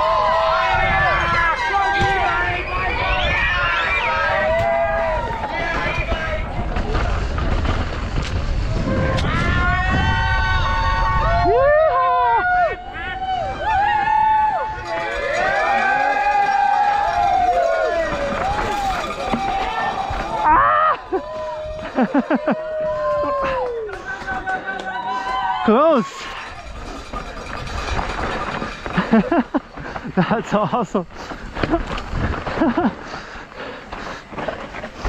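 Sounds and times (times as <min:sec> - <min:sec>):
spectators shouting and cheering: 0:00.0 - 0:07.4, 0:08.4 - 0:27.2
mountain bike rumble: 0:00.0 - 0:11.5, 0:25.3 - 0:35.0
wind: 0:00.0 - 0:35.0.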